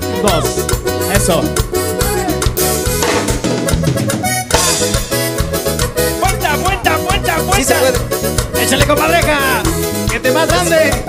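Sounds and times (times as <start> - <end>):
drum kit beat: 0.0 - 11.0
electric bass: 0.0 - 11.0
reedy keyboard lead: 0.0 - 11.0.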